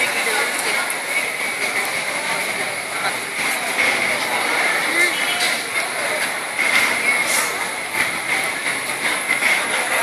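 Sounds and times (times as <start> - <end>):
crowd din: 0.0 - 10.0.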